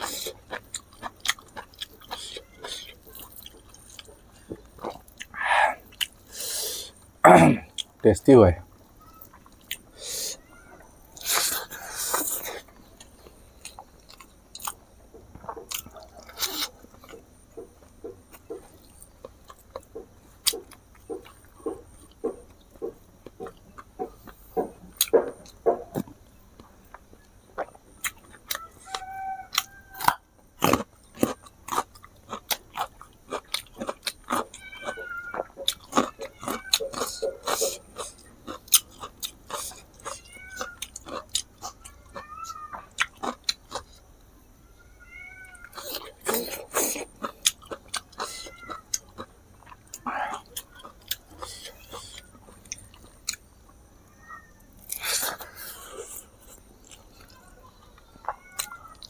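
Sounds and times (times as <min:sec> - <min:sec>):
wet chewing and lip-smacking: 0:00.0 - 0:07.0, 0:08.8 - 0:44.3, 0:45.6 - 0:53.8, 0:54.7 - 0:59.0.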